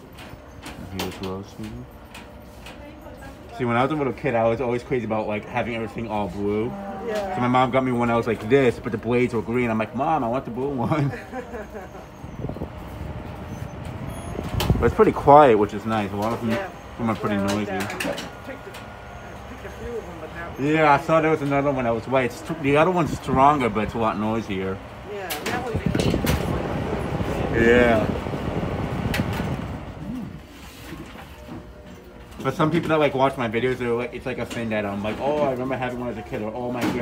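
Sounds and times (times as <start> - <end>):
desk fan whirring: 0.0 - 37.0
desk fan air rushing: 12.0 - 18.2, 20.1 - 31.1.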